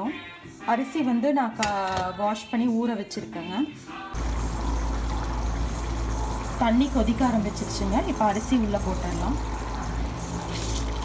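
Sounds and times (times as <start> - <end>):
pot heating with hiss and rumble: 4.2 - 11.0.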